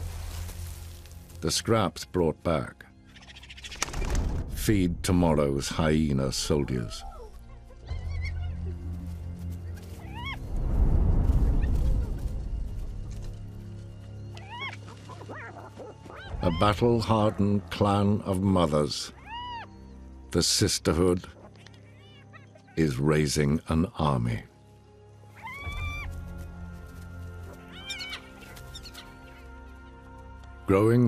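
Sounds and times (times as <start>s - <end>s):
low musical drone: 0.0s - 31.0s
hyena cub whining: 6.9s - 8.8s, 10.0s - 10.5s, 14.3s - 16.8s, 19.1s - 19.9s, 21.4s - 22.8s, 25.3s - 26.3s, 27.6s - 29.4s.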